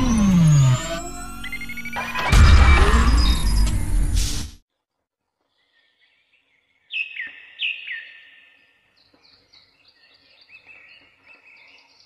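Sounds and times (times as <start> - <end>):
falling synth tone over bass: 0.0 - 4.4.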